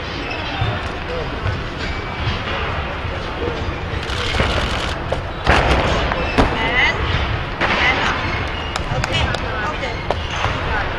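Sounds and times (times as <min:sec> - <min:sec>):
voices chattering: 0:02.6 - 0:10.9.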